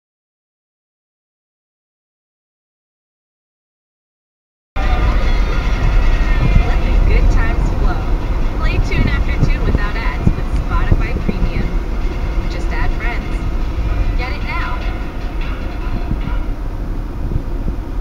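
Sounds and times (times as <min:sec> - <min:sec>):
car tyres and engine rumble: 0:04.8 - 0:18.0
indistinct voices: 0:04.8 - 0:18.0.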